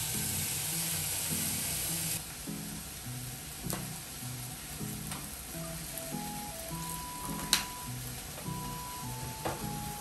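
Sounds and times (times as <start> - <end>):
food sizzling in a pan: 0.0 - 10.0
quiet background music: 0.0 - 10.0.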